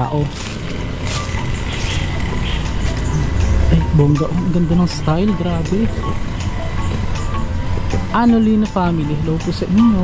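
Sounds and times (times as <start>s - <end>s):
steady low rumble: 0.0s - 9.7s
faint background music: 0.0s - 10.0s.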